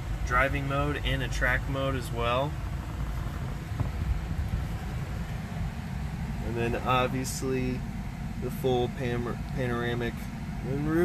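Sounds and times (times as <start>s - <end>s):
faint fan hiss: 0.0s - 11.0s
microphone handling rumble: 2.5s - 7.9s.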